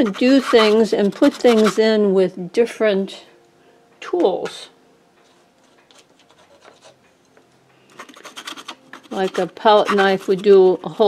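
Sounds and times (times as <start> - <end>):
paintbrush scratching on canvas: 0.0 - 2.0, 5.9 - 7.0, 7.9 - 11.0.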